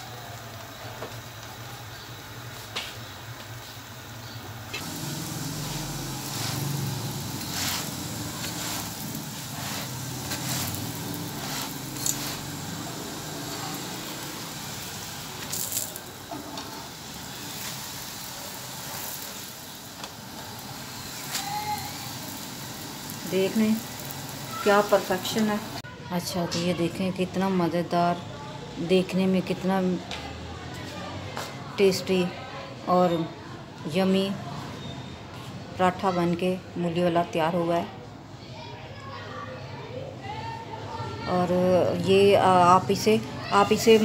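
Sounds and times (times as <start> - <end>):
flatbread sizzling in oil: 0.0 - 25.8, 42.2 - 44.0.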